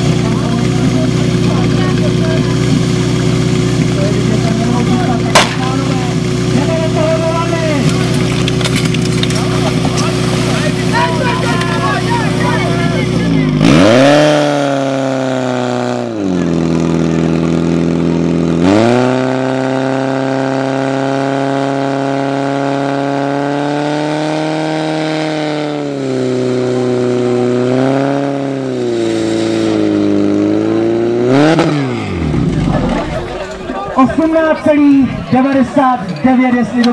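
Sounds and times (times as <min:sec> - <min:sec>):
pump engine revving: 0:00.0 - 0:36.9
person speaking: 0:09.3 - 0:13.8.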